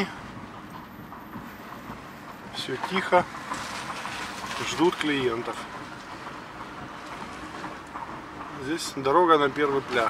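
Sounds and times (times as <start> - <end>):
car engine and tyre noise: 0.0 - 10.0.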